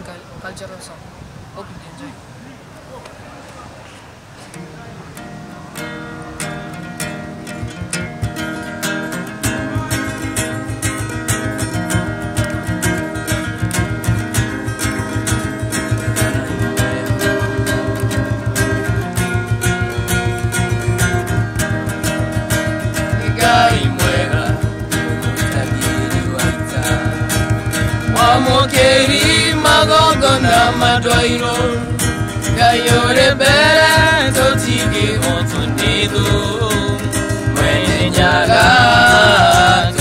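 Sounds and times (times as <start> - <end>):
acoustic guitar strumming: 4.5 - 40.0
hand drum beating: 6.9 - 40.0.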